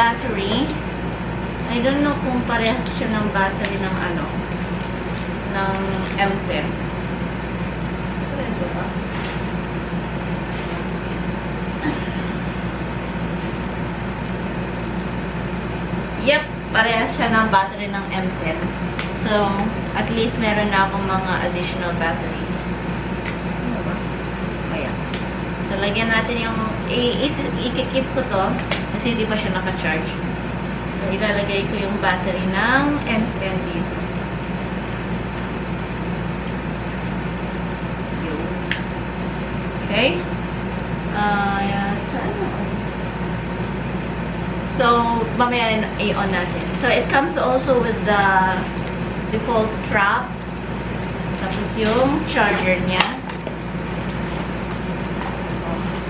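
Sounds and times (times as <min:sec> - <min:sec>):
steady mechanical hum with hiss: 0:00.0 - 0:56.0.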